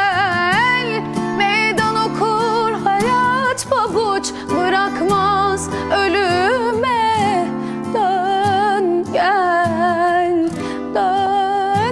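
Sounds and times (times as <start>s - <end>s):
guitar accompaniment: 0.0s - 11.9s
woman singing with vibrato: 0.0s - 11.9s.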